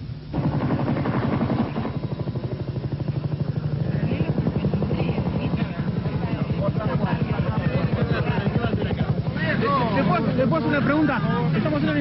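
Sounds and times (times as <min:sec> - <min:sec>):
machine throbbing: 0:00.0 - 0:12.0
faint voices: 0:01.4 - 0:12.0.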